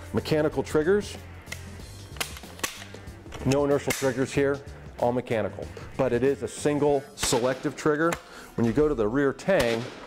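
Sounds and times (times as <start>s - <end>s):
soft background music: 0.0s - 10.0s
shotgun trigger clicking: 1.5s - 3.1s.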